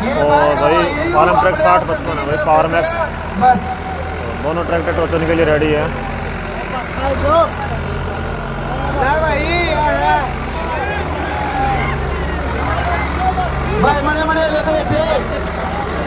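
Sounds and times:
diesel tractor engines running: 0:00.0 - 0:16.0.

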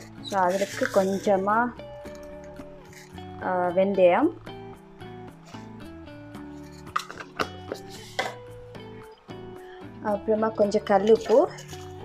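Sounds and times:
music with held notes: 0:00.0 - 0:12.0.

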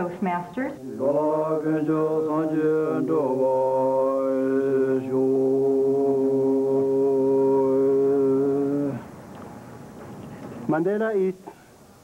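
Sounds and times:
voices chanting held notes: 0:00.6 - 0:10.7
low drone: 0:00.8 - 0:10.5.

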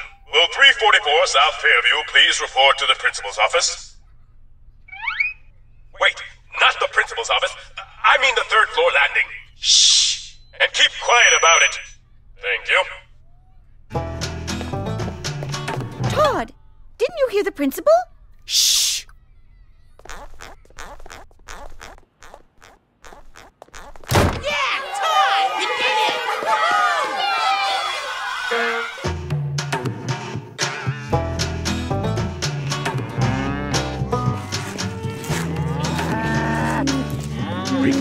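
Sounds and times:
cartoon cows mooing: 0:32.3 - 0:38.0.

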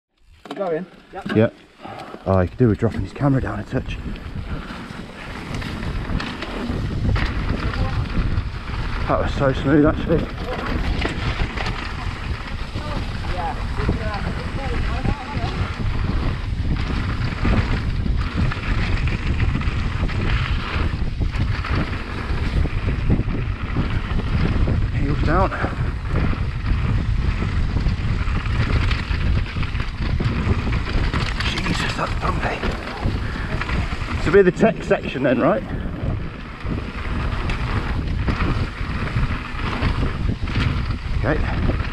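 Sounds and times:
bike tyre rumble: 0:00.1 - 0:41.9
bike frame rattle: 0:00.3 - 0:41.9
wind buffeting microphone: 0:01.4 - 0:41.9.

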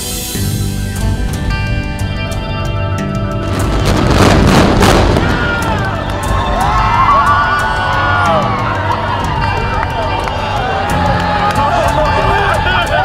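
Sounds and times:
demolition blasts: 0:03.4 - 0:07.5
crowd cheering and whistling: 0:04.8 - 0:13.0.

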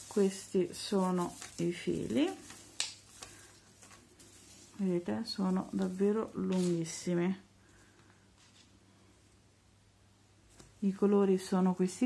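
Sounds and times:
faint rustling of glass beads: 0:00.0 - 0:07.1.

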